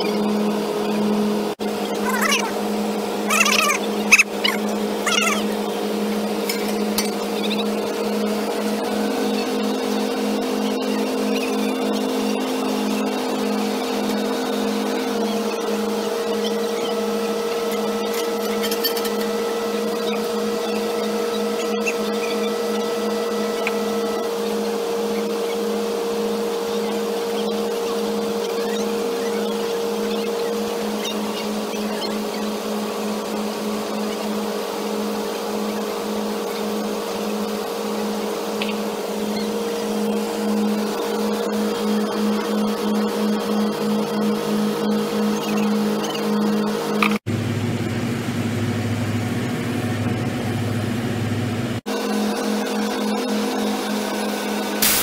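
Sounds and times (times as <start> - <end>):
heavy diesel machinery droning: 0.0 - 55.0.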